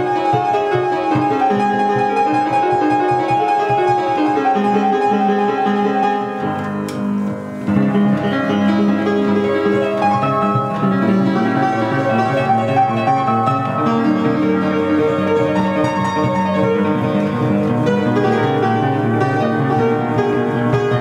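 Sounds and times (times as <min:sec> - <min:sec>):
player piano music: 0:00.0 - 0:21.0.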